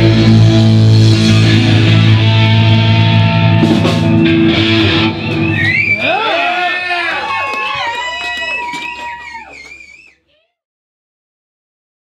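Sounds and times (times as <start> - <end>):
punk rock band sustained notes: 0.0 - 5.6
amplified guitar ringing: 0.0 - 5.9.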